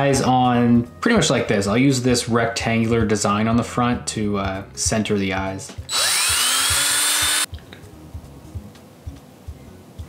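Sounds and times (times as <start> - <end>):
cordless drill whirring: 5.9 - 7.5.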